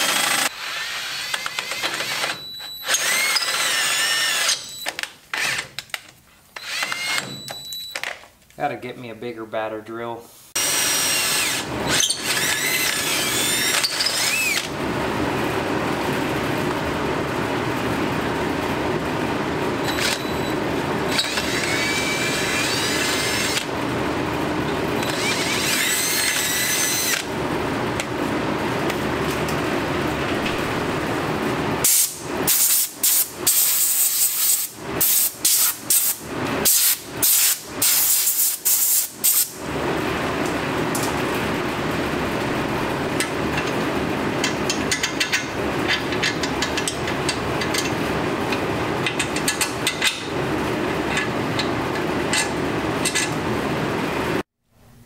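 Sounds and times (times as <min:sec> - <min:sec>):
cordless drill whine: 0:00.0 - 0:05.7, 0:06.6 - 0:07.8, 0:10.6 - 0:14.7, 0:19.8 - 0:20.5, 0:21.1 - 0:23.7, 0:25.0 - 0:27.3
compressed air blasts: 0:31.8 - 0:39.5.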